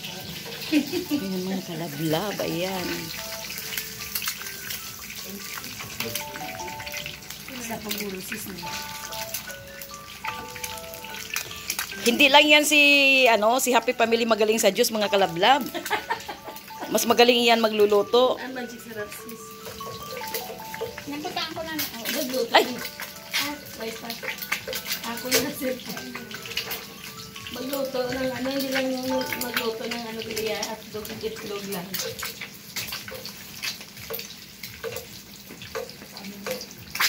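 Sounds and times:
melody of held notes: 0.0s - 31.6s
eggs sizzling in hot oil: 0.0s - 37.0s.

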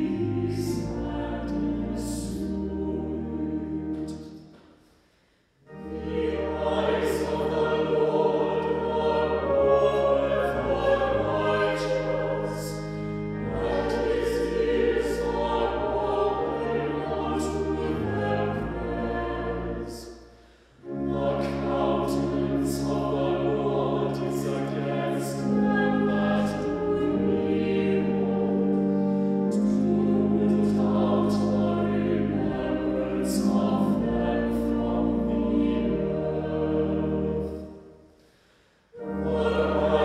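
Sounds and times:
chamber choir singing chords: 0.0s - 5.0s, 5.6s - 40.0s.

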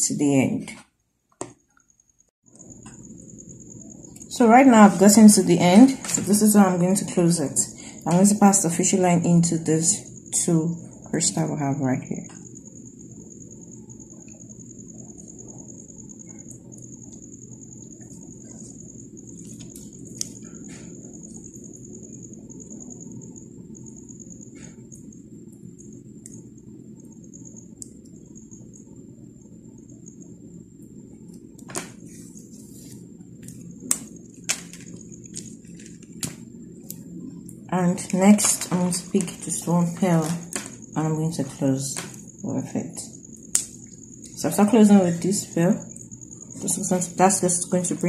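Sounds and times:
faint high whine: 1.5s - 48.0s
steady low hum: 1.9s - 48.0s.

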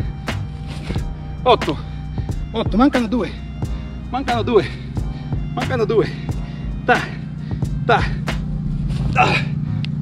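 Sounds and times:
low hum: 0.0s - 10.0s
man calling out cues: 6.8s - 8.3s.

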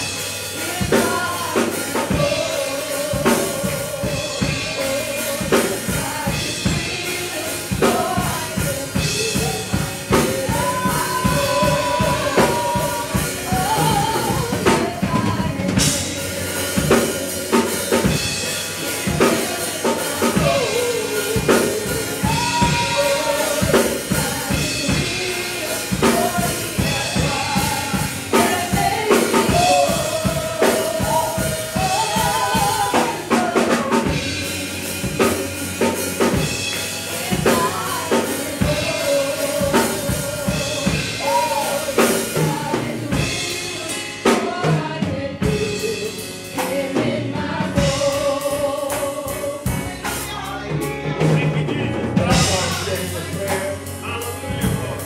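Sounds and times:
drum kit beat: 0.0s - 55.0s
keyboard chords: 0.0s - 55.0s
person singing: 0.0s - 55.0s.

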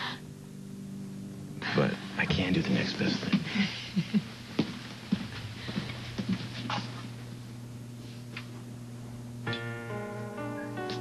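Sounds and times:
low steady hum: 0.0s - 11.0s
footsteps on hard floor: 4.5s - 7.4s.

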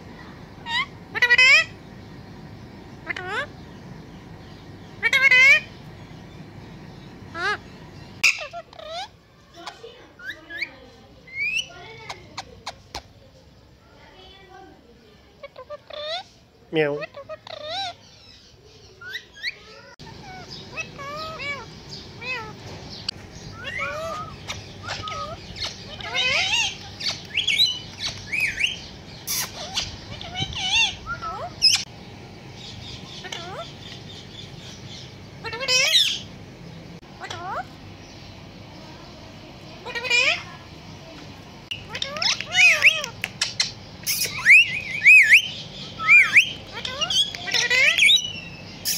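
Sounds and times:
parakeets chirping and chattering: 0.0s - 48.9s
parakeet loud squawk: 0.6s - 1.8s, 3.0s - 3.6s, 5.0s - 5.8s, 7.3s - 10.7s, 15.4s - 16.3s, 17.0s - 18.4s, 19.0s - 22.6s, 23.5s - 31.9s, 33.1s - 33.9s, 35.4s - 36.3s, 37.1s - 37.7s, 39.8s - 40.6s, 41.7s - 48.9s.

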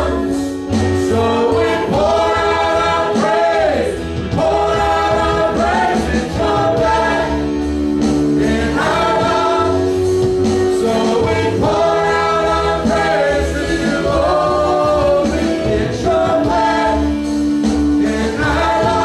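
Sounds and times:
choir singing gospel song: 0.0s - 19.0s
instrumental accompaniment: 0.0s - 19.0s.

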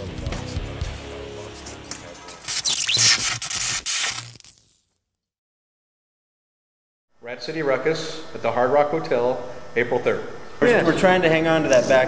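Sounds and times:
rasping scraping sound effect: 1.4s - 4.4s.

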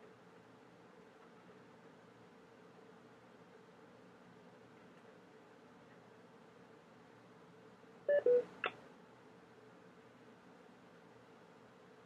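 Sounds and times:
electronic beeps: 8.1s - 8.5s.

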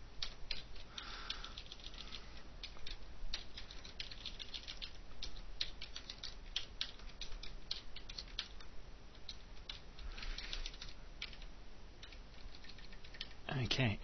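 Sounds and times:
computer keyboard typing: 0.2s - 13.4s.

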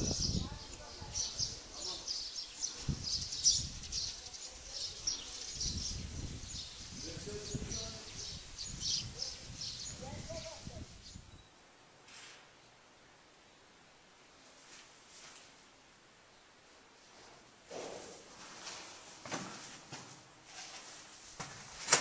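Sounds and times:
small birds chirping: 0.0s - 11.6s.

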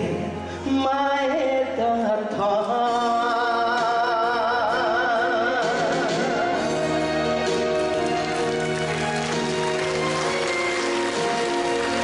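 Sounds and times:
karaoke backing track: 0.0s - 12.0s.

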